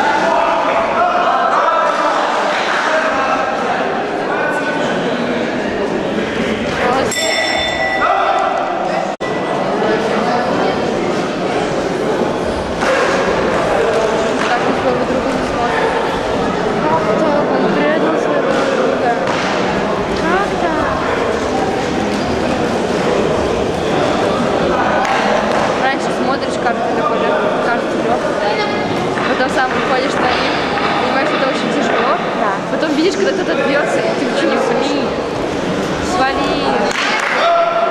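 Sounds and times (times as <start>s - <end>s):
people's voices in hall: 0.0s - 37.9s
bell strike ringing: 7.1s - 8.7s.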